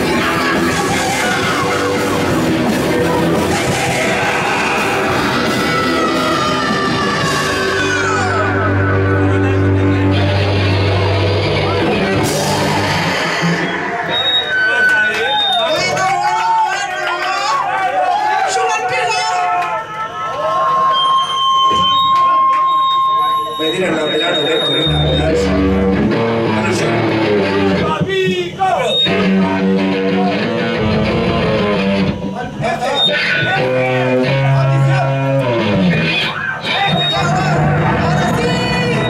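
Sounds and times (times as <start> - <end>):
bass guitar: 0.0 - 15.2, 24.6 - 39.0
electric guitar: 0.0 - 15.2, 24.6 - 39.0
crowd chatter: 0.0 - 39.0.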